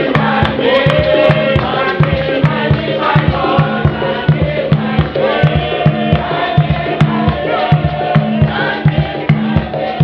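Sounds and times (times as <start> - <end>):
choir singing a hymn: 0.0 - 10.0
steady low beat: 0.0 - 10.0.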